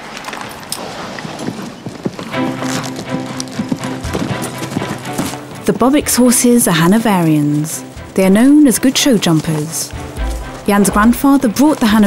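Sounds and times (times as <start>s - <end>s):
horse hoofbeats on sand: 0.5s - 12.0s
background music with sustained tones: 2.3s - 12.0s.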